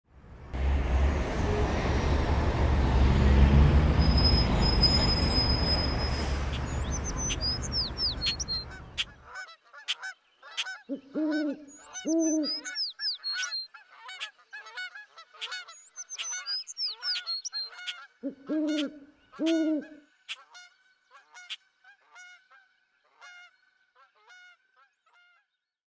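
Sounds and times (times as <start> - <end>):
birds chirping: 2.6 - 21.6
honking bird calls: 4.0 - 25.4
short honking calls: 17.7 - 22.4.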